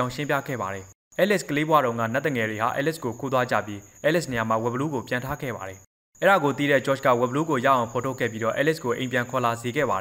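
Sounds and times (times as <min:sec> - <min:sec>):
man narrating: 0:00.0 - 0:10.0.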